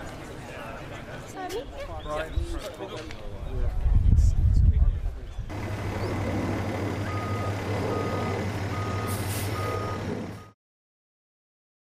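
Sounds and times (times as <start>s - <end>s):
low engine hum: 5.5s - 10.6s
reversing alarm beeping: 5.7s - 10.6s.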